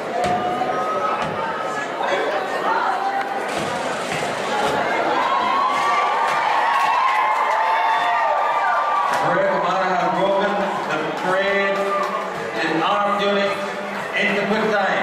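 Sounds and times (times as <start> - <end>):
crowd talking and calling out: 0.0 - 15.0.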